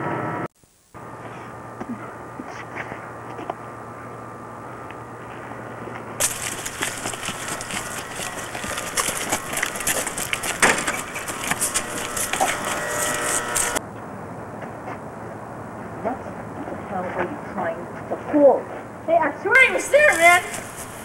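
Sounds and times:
running footsteps crunching: 4.8s - 13.8s, 19.6s - 21.0s.

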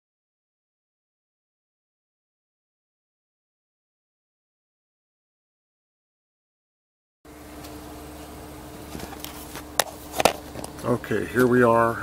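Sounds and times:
engine idling hum: 7.3s - 12.0s.

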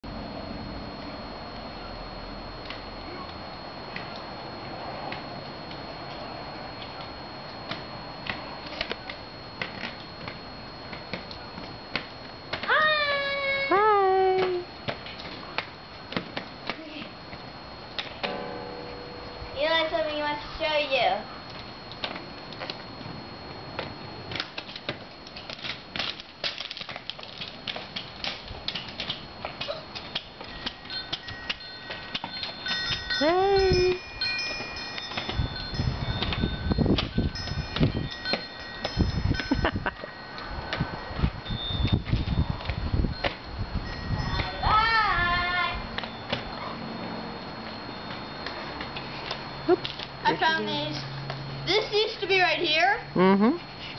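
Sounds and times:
chime-like ringing tones: 17.2s - 24.0s, 30.4s - 53.2s
wheels rolling on concrete: 21.5s - 33.3s.

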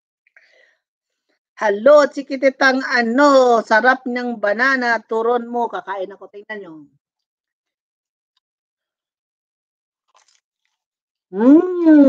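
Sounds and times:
crunchy food being chewed: 10.0s - 10.9s.

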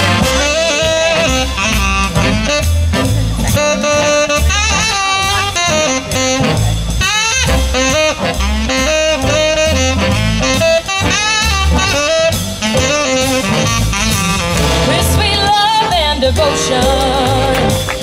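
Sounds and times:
jazz big band playing: 0.0s - 18.0s
saxophone solo: 0.0s - 18.0s.

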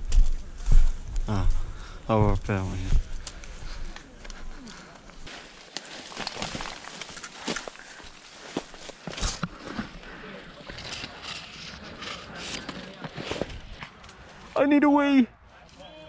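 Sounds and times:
leaves and twigs rustling: 0.0s - 14.6s
twigs cracking: 3.0s - 14.3s.

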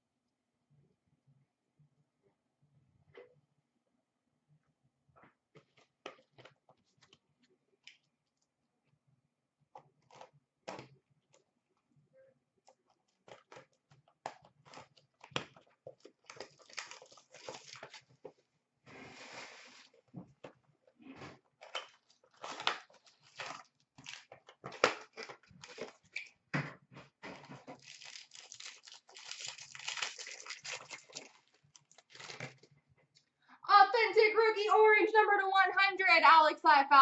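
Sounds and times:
cardboard tearing and rustling: 27.8s - 32.6s.

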